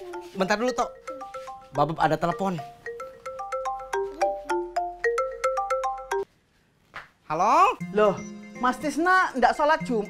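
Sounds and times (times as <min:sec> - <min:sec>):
mobile phone ringtone: 0:00.0 - 0:06.3.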